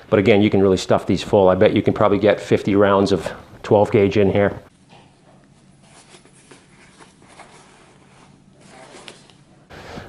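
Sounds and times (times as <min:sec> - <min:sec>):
waxed cotton coat rustling: 0:05.6 - 0:09.3.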